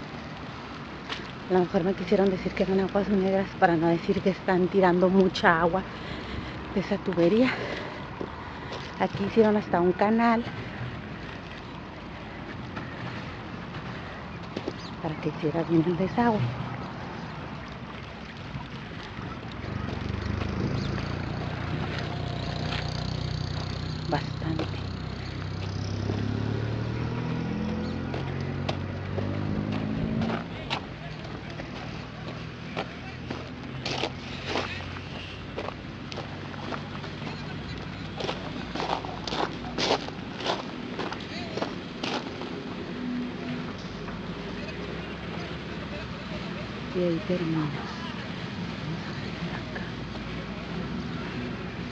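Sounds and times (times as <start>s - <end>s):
vehicle engine running: 19.2s - 51.9s.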